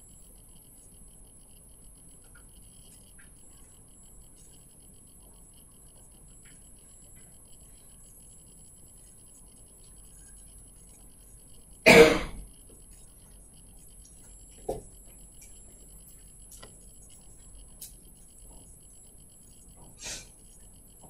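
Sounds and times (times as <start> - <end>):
thin steady high whine: 0.0 - 21.0
person coughing: 11.9 - 12.4.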